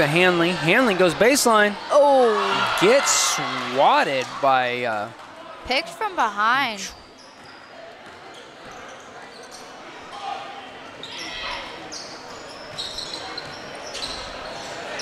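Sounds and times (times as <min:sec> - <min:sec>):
crowd chatter: 0:00.0 - 0:15.0.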